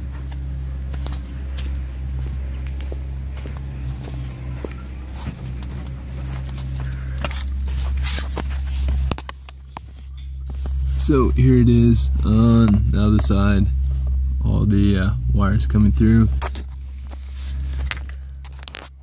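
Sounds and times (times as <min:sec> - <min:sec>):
footsteps: 0:00.0 - 0:11.2, 0:16.3 - 0:19.0
handling clicks and rustles: 0:00.0 - 0:11.4, 0:16.3 - 0:19.0
steady low hum: 0:00.0 - 0:19.0.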